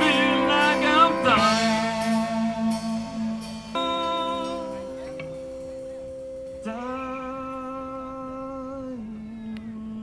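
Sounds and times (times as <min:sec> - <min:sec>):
rock band sustained note: 0:00.0 - 0:09.4.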